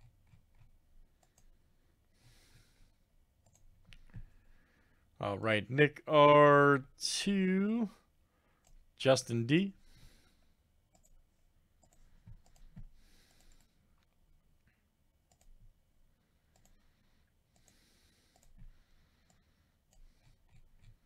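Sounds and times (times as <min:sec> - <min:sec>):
computer mouse and keyboard clicks: 0:03.4 - 0:04.2, 0:11.8 - 0:13.8.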